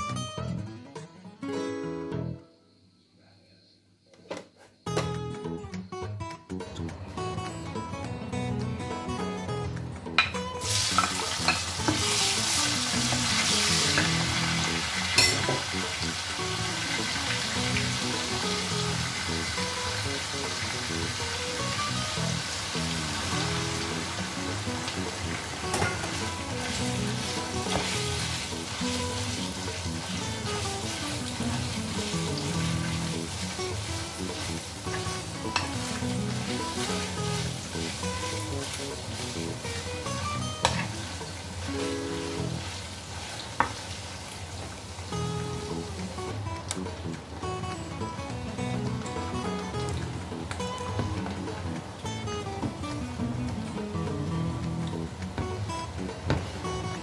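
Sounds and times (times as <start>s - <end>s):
onion and meat sizzling in pan: 10.2s - 46.2s, 54.5s - 57.0s.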